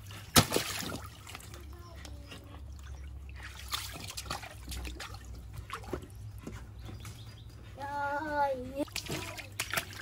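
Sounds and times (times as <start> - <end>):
water sloshing and trickling: 0.0 - 10.0.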